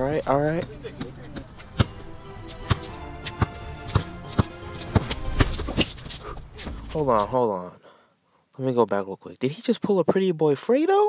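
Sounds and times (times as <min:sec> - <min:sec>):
background music: 0:00.0 - 0:07.3
basketball dribbling: 0:00.5 - 0:06.9.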